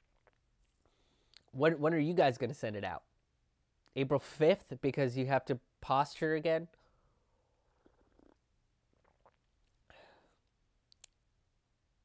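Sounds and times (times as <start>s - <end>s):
man drinking from mug: 0.0s - 0.4s, 7.7s - 10.3s.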